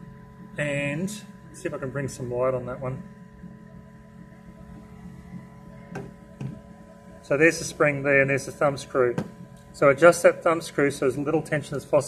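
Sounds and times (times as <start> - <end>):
faint steady tonal hum: 0.0 - 12.0.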